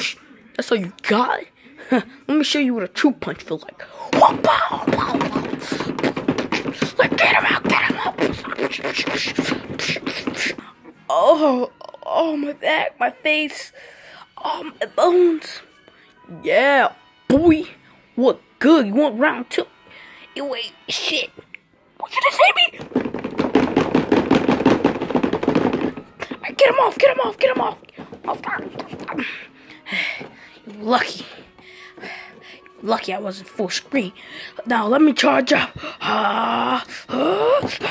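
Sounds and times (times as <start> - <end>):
stuffed toys thumping: 3.2 - 10.7, 22.1 - 33.1, 35.4 - 37.9
person making mouth punching sounds: 7.8 - 10.6.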